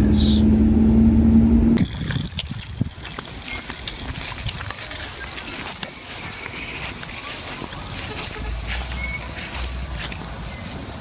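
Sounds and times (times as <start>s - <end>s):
car cabin drone: 0.0s - 1.8s
faint ticks and rustles: 2.0s - 10.4s.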